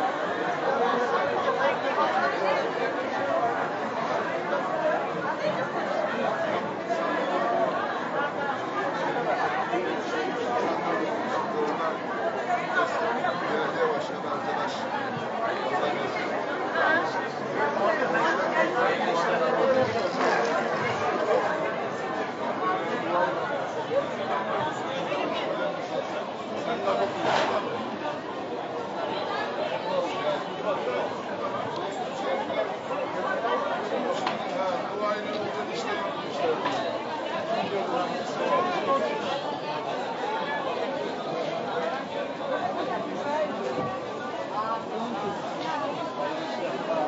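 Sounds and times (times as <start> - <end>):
crowd chatter: 0.0 - 47.0.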